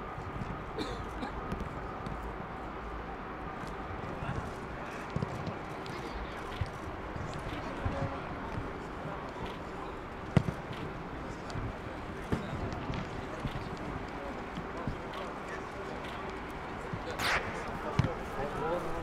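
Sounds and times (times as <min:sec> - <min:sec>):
distant voices: 0:00.1 - 0:19.0
short thuds: 0:16.9 - 0:18.5.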